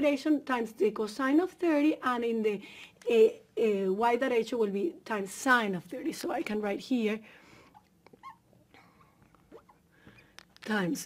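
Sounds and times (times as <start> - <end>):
marker squeaking on glass: 7.7 - 8.4, 9.5 - 10.4.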